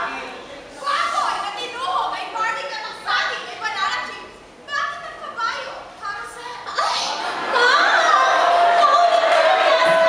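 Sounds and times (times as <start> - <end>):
high-pitched raised voices in hall: 0.0 - 10.0.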